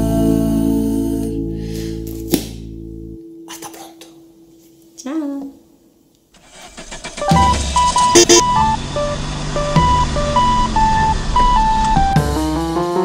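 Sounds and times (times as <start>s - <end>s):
cartoon car engine starting: 6.4s - 13.0s
bright melody of single notes: 7.3s - 12.5s.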